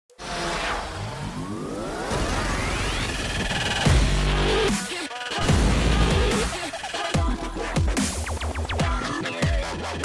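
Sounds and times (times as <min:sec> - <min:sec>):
rising machine whines: 0:00.1 - 0:04.7.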